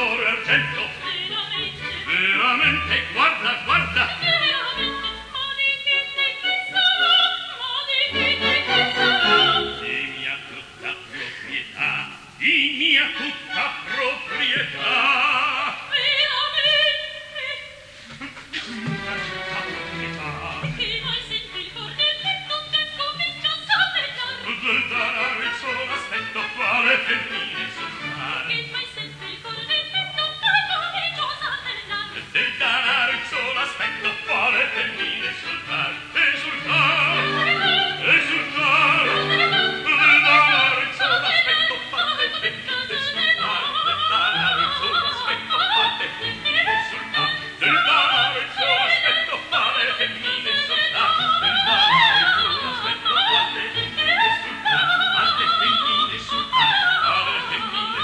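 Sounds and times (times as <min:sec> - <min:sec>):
operatic singing: 0:00.0 - 0:58.0
orchestra: 0:00.0 - 0:58.0
orchestral accompaniment: 0:08.1 - 0:10.5, 0:18.6 - 0:22.2.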